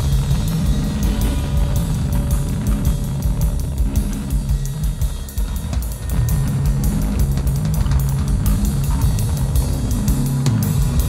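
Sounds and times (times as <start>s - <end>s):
drum kit played fast: 0.0s - 11.0s
heavy low bass: 0.0s - 11.0s
rapid cymbal strokes: 0.0s - 11.0s.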